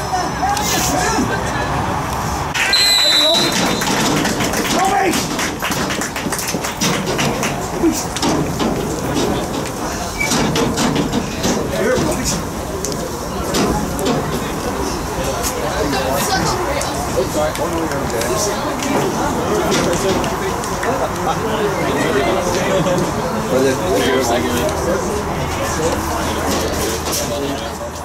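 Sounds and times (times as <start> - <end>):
indistinct voices: 0.0 - 28.0
referee's whistle blast: 2.6 - 4.0
sharp claps: 2.6 - 8.8.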